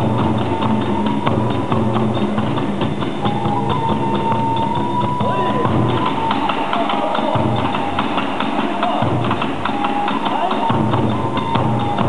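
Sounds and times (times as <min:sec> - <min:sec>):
bamboo flute high note: 0:00.0 - 0:12.0
drum beat: 0:00.0 - 0:12.0.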